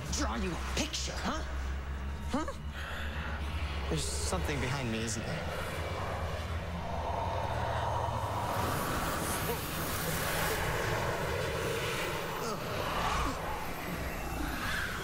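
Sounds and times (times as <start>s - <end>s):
rushing wind-like whoosh: 3.3s - 15.0s.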